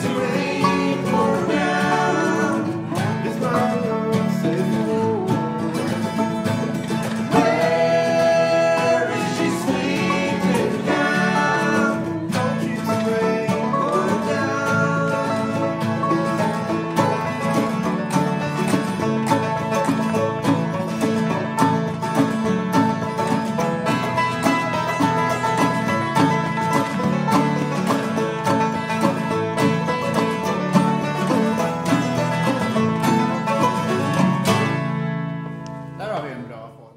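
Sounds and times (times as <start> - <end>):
bluegrass band playing: 0.0 - 36.7.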